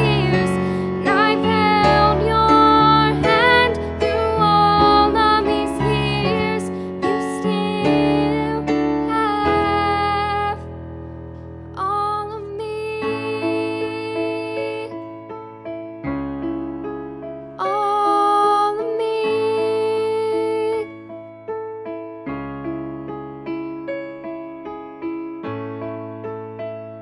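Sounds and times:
woman singing: 0.0 - 10.7, 11.7 - 15.1, 17.6 - 21.1
slow piano ballad on keyboard: 0.0 - 27.0
woman singing a long note: 11.8 - 14.9, 17.6 - 20.9.

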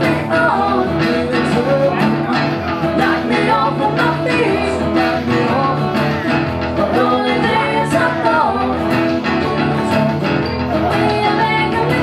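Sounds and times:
man singing into a microphone: 0.0 - 8.9
plucked guitar-like sound: 0.0 - 12.0.

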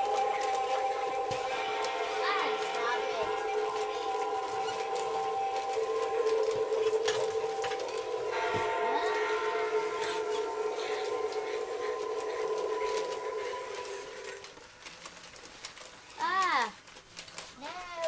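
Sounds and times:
siren-like electronic tones: 0.0 - 14.6.

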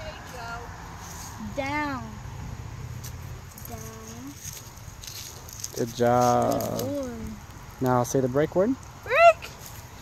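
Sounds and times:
child speaking: 1.4 - 2.2, 3.6 - 4.4, 6.6 - 7.4.

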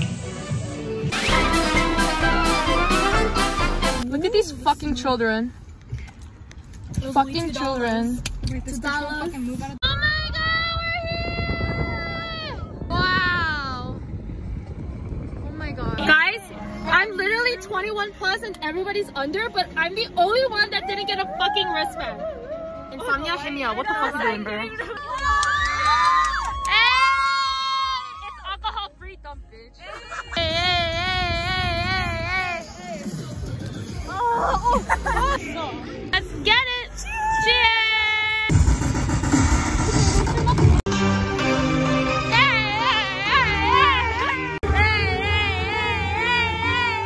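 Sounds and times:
woman talking: 4.0 - 5.5, 7.0 - 9.8.

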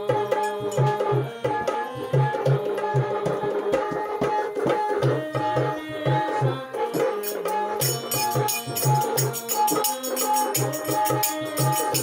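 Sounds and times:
barrel hand drum rhythm: 0.0 - 12.0
harmonium held notes: 0.0 - 12.0.

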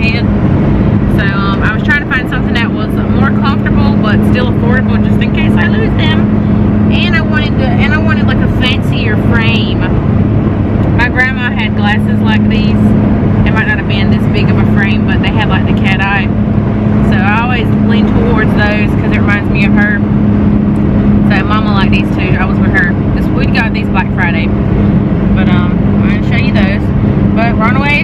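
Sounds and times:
woman talking: 0.0 - 0.3, 1.1 - 9.9, 10.9 - 16.4, 17.0 - 20.0, 21.2 - 24.5, 25.4 - 28.0
truck engine and road drone: 0.0 - 28.0.

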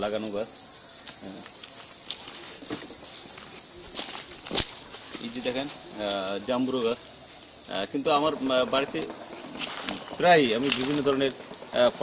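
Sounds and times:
insects chirping: 0.0 - 12.0
footfalls on dry leaves: 2.0 - 6.3, 9.5 - 11.3.

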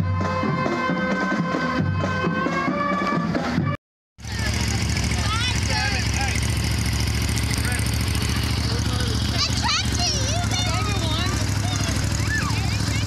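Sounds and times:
engine running low drone: 0.0 - 13.0
people calling out: 4.3 - 13.0.

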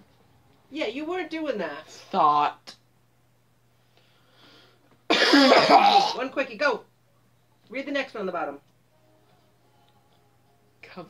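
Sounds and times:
person coughing: 5.1 - 6.2.

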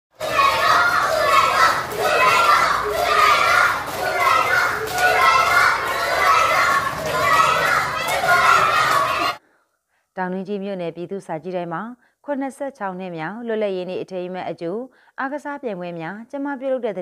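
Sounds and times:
children shouting and cheering: 0.1 - 9.4
hand-clapping: 0.2 - 9.4.

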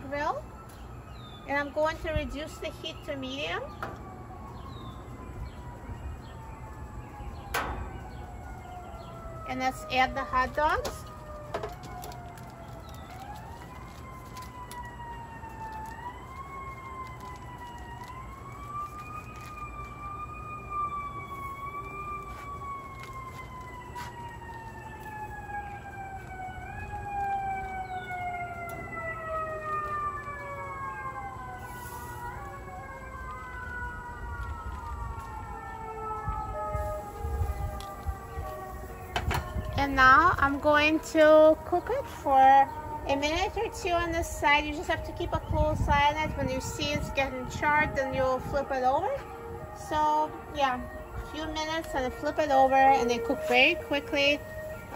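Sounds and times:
emergency vehicle sirens wailing: 0.0 - 54.9.

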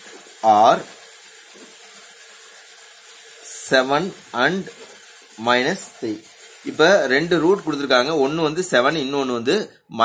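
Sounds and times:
steady hiss: 0.0 - 9.1.

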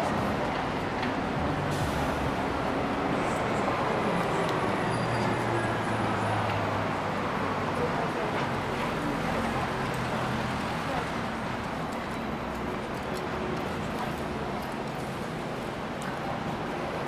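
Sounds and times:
indistinct voices of passers-by: 0.0 - 17.0
steady traffic noise: 0.0 - 17.0.

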